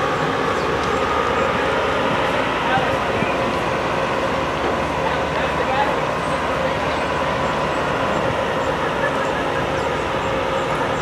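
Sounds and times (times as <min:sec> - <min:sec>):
steady rushing noise: 0:00.0 - 0:11.0
murmuring voices: 0:01.3 - 0:11.0.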